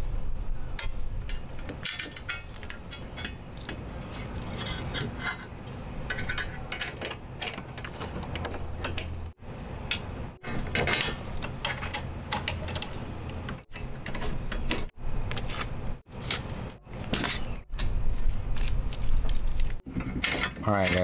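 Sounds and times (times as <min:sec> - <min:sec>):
small metal clicks and scrapes: 0:00.8 - 0:09.3, 0:19.6 - 0:21.0.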